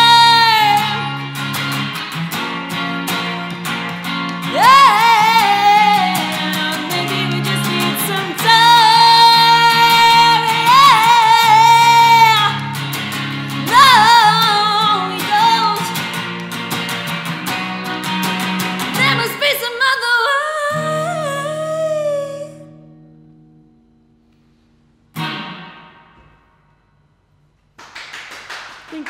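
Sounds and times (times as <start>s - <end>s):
woman singing with vibrato: 0.0s - 1.3s, 4.4s - 12.8s, 13.5s - 16.0s, 18.9s - 22.8s
electric guitar strumming: 0.0s - 19.8s, 20.8s - 27.1s.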